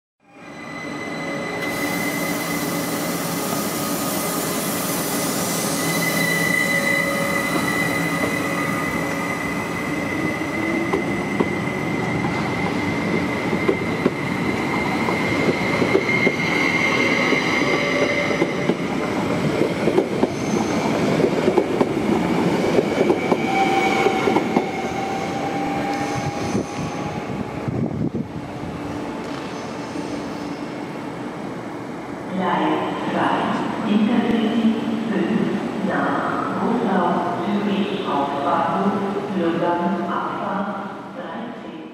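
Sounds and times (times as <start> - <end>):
electric train whine: 0.3 - 32.1
train wheels rumbling: 1.6 - 28.5.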